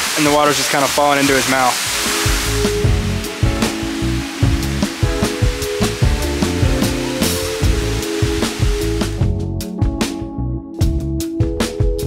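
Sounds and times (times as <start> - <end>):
waterfall rushing hiss: 0.0 - 9.3
background music with steady beat: 1.9 - 12.0.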